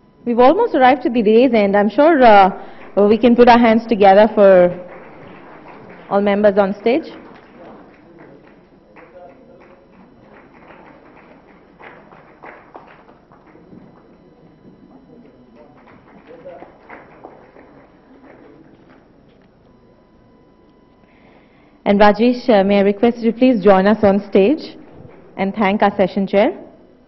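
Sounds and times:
light scattered clapping: 4.2s - 19.5s
faint indistinct voices: 6.9s - 21.1s.

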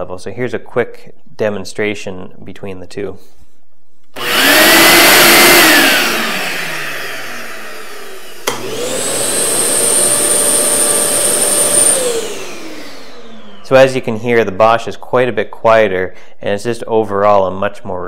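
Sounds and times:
shop vacuum running loudly: 4.2s - 14.4s
dust extractor high whine: 4.2s - 14.8s
switch click: 8.4s - 8.7s.

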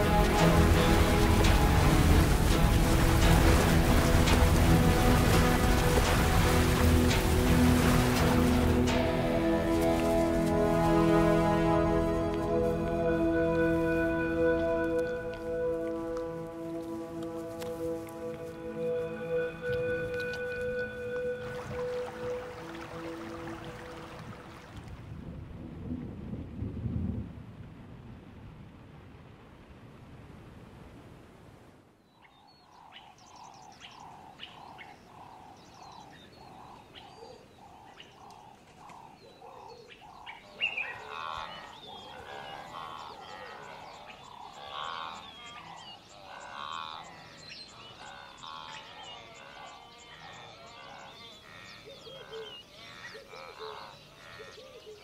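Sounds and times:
music: 0.0s - 24.1s
animals chirping and calling: 32.3s - 55.0s.

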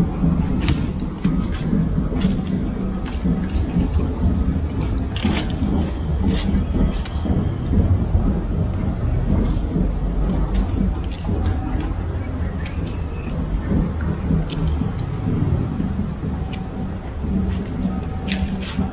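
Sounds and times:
wind buffeting microphone: 0.0s - 18.9s.

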